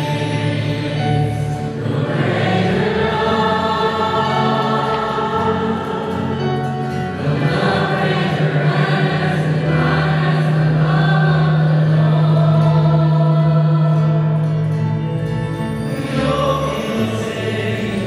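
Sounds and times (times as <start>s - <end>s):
church choir singing: 0.0s - 18.0s
musical accompaniment: 0.0s - 18.0s.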